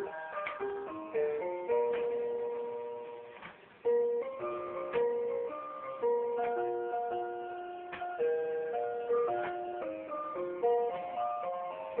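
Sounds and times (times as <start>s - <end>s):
tinny electronic toy melody: 0.0s - 12.0s.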